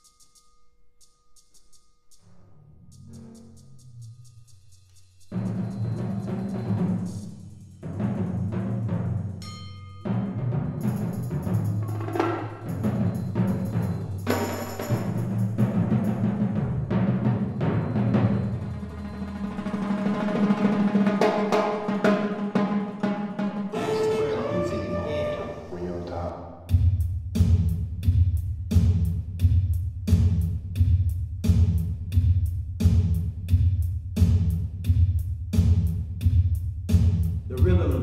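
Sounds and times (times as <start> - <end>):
timpani and drums played: 5.3 - 9.4, 10.0 - 38.0.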